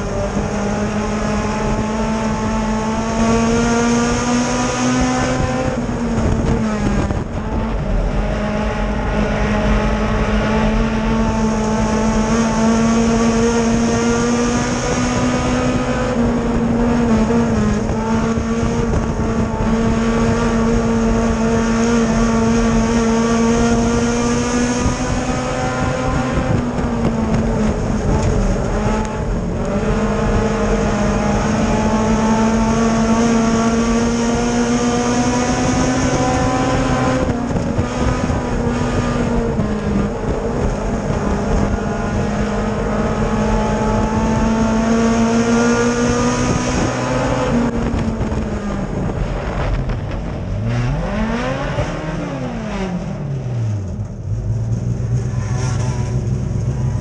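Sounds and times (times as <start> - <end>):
race car engine at high revs: 0.0 - 57.0.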